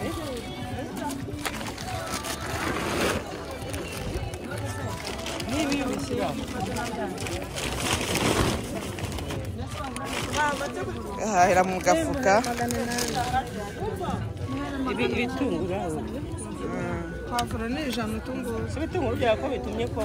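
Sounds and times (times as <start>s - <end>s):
rustling of produce and bags: 0.0s - 15.8s
voices chattering: 0.0s - 20.0s.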